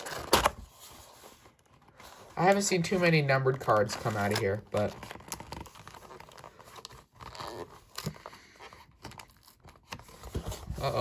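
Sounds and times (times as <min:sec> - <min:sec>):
faint cardboard rustling: 0:00.0 - 0:11.0.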